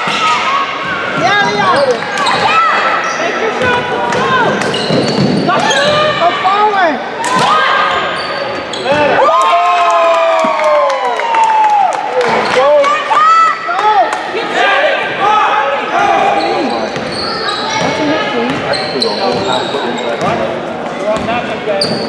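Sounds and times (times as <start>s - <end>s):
sneakers squeaking on hardwood: 0.0s - 6.2s, 8.0s - 9.2s, 16.3s - 22.0s
basketball bouncing: 21.2s - 22.0s.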